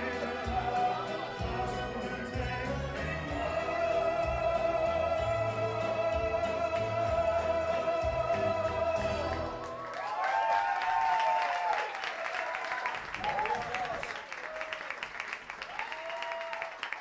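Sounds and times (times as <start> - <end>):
karaoke backing music: 0.0 - 9.9
audience applause: 9.2 - 17.0.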